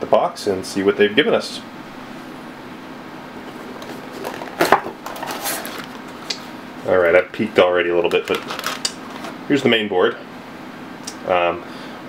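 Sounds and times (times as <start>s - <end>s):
cardboard flap scraping: 3.7s - 6.1s, 8.2s - 9.4s
cardboard rustling: 3.7s - 6.2s, 8.0s - 9.4s.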